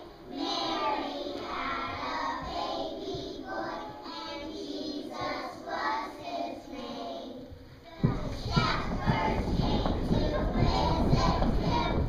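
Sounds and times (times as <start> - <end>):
children singing in a choir: 0.0 - 12.0.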